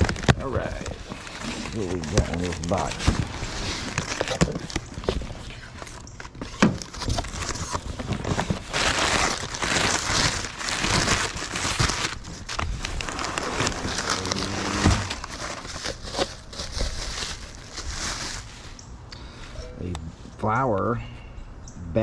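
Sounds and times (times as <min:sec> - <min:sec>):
newspaper rustling and crinkling: 0:00.0 - 0:18.8.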